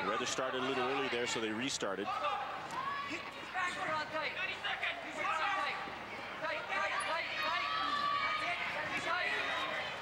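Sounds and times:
people shouting: 6.7s - 10.0s.

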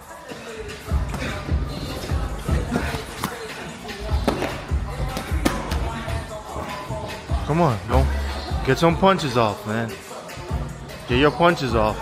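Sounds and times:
background music: 0.0s - 12.0s
boxing gloves punching: 2.5s - 6.1s.

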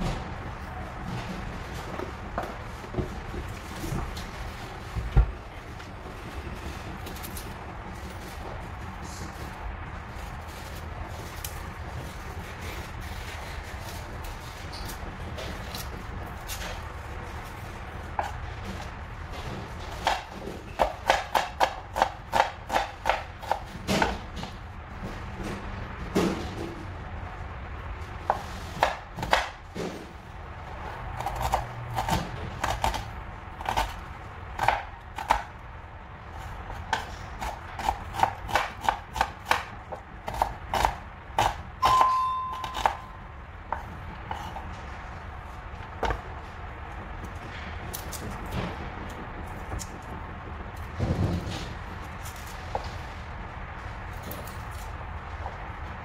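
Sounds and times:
knife chopping on wooden board: 36.9s - 43.1s.

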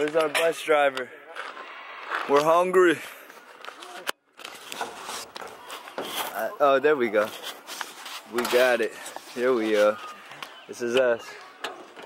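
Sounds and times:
faint voices: 5.2s - 12.0s.

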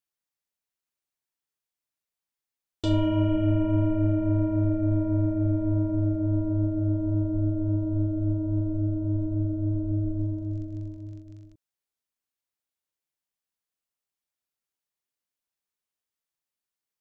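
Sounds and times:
singing bowl ringing: 2.8s - 11.4s.

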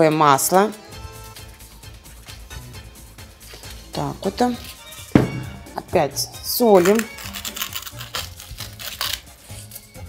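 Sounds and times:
light background music: 0.0s - 10.0s
salt mill grinding: 6.8s - 9.3s.

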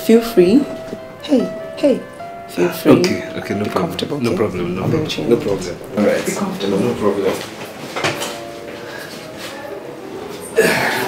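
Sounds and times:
faint steady tones: 0.0s - 10.5s.

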